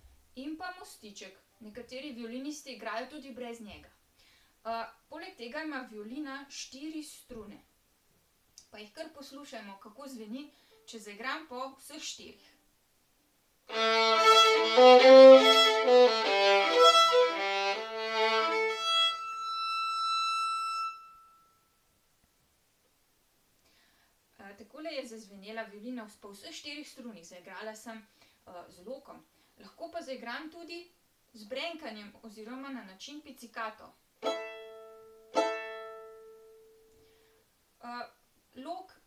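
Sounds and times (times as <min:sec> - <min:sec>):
violin bowed: 0:13.7 - 0:21.5, 0:34.2 - 0:36.6
violin string plucked: 0:34.2 - 0:36.8.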